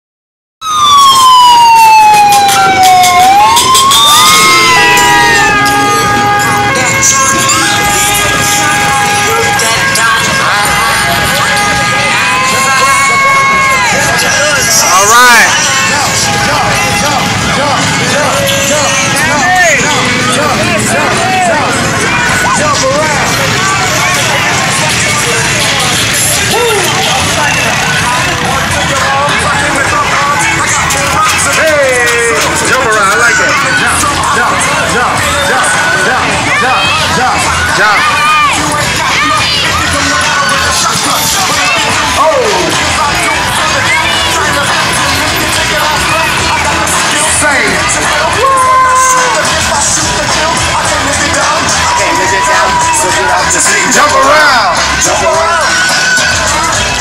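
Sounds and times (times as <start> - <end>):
siren wailing: 0.6 - 30.8
crowd voices calling out: 0.6 - 57.0
parade music: 0.6 - 57.0
four-wheelers passing: 0.7 - 57.0.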